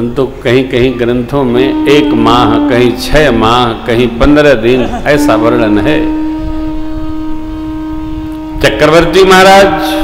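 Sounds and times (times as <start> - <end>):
instrumental music holding steady note: 1.3 - 10.0.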